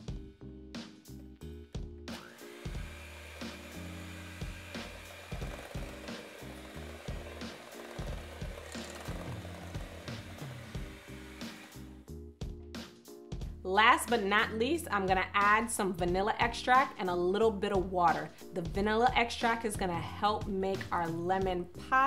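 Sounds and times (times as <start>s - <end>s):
background music: 0.0s - 22.0s
electric hand mixer running: 2.1s - 12.0s.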